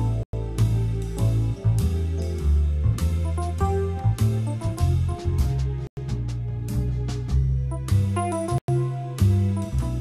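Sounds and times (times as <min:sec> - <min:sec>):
digital keyboard playing jazz: 0:00.0 - 0:10.0.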